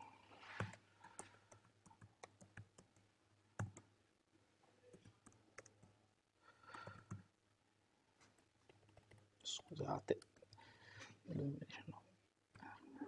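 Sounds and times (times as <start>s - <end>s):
faint keyboard typing: 0.0s - 4.0s, 4.8s - 6.0s, 6.6s - 7.3s, 8.2s - 10.7s.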